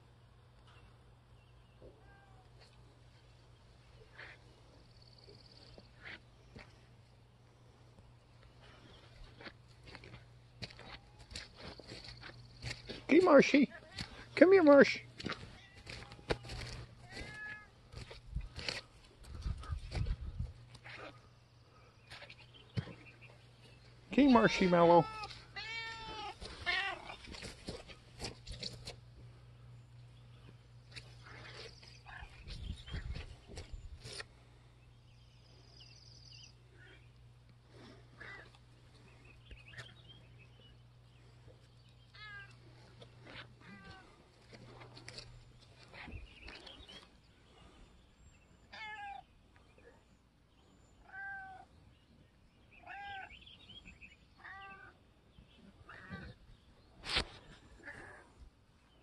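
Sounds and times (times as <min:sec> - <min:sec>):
cat meowing: 0:17.0 - 0:17.8, 0:24.5 - 0:27.2, 0:43.6 - 0:44.1, 0:48.7 - 0:49.2, 0:51.0 - 0:51.6, 0:52.8 - 0:53.3, 0:54.4 - 0:55.0
pet high-pitched calls: 0:52.8 - 0:53.5.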